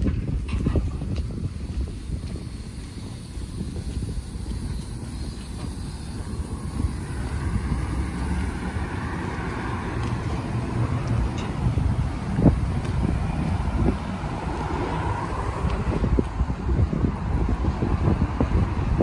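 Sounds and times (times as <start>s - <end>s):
engine: 0.0s - 19.0s
street traffic passing: 0.0s - 19.0s
wind rumbling on microphone: 0.0s - 19.0s.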